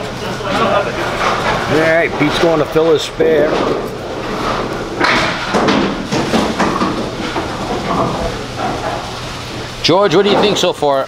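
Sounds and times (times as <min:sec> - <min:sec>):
bowling hall background noise: 0:00.0 - 0:11.0
bowling pins clattering: 0:00.0 - 0:11.0
bowling ball rolling down lane: 0:00.5 - 0:11.0.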